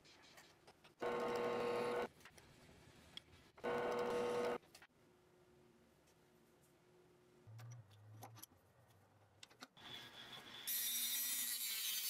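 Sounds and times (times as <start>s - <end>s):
drill press motor whine: 1.0s - 2.1s, 3.6s - 4.6s.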